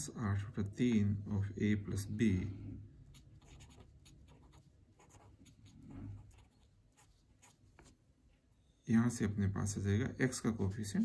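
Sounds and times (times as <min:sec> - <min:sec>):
pen scratching on paper: 0:03.1 - 0:07.9.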